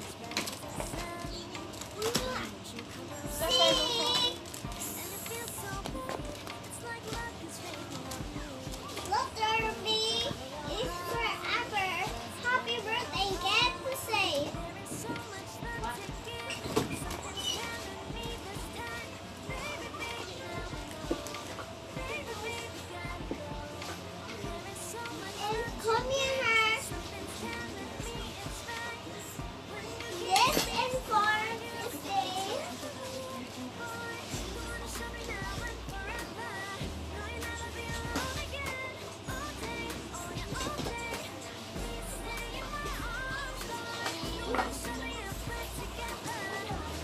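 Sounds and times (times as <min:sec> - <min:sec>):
background music: 0:00.0 - 0:47.0
toddler talking: 0:03.3 - 0:04.4, 0:09.0 - 0:14.5.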